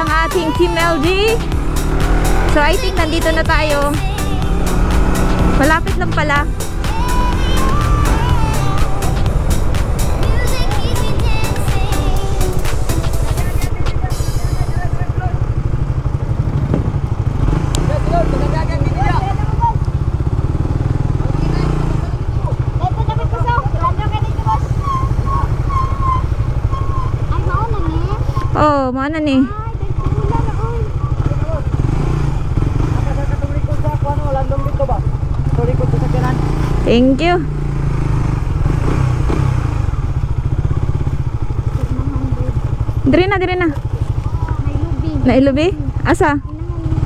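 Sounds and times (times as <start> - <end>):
people's voices: 0.0 - 16.1, 21.1 - 31.9, 41.6 - 47.0
motorcycle engine running slowly: 0.0 - 47.0.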